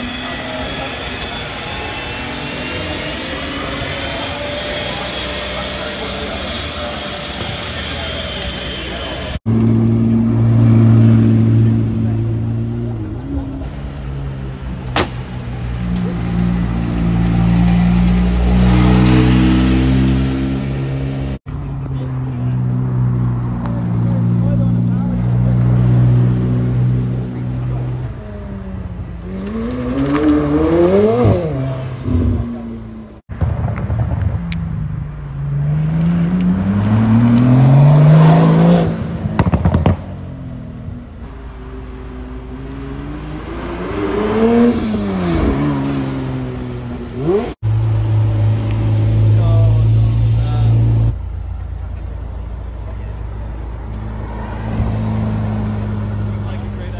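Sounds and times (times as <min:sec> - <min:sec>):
car engine idling and revving: 0:00.0 - 0:56.9.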